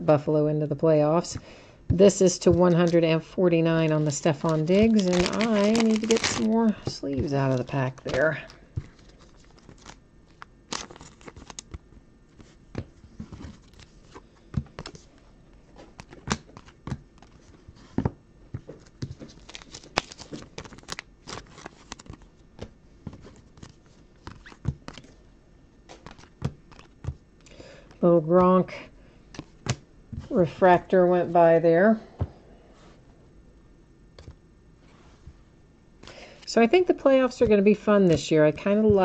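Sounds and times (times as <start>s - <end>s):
card sleeves crinkling: 3.8s - 17.9s, 18.6s - 25.2s, 25.9s - 27.2s.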